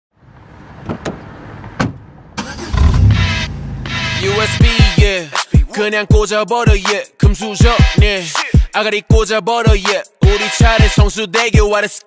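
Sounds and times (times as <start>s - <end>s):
car engine revving: 0.6s - 4.8s.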